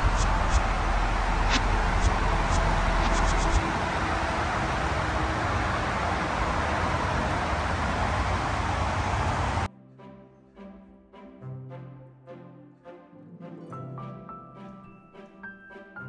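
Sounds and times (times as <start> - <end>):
music: 0.0 - 4.6, 9.7 - 16.0
highway traffic noise: 0.0 - 9.7.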